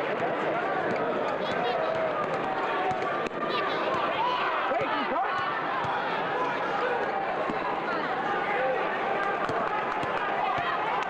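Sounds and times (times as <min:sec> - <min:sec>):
crowd noise in an arena: 0:00.0 - 0:11.0.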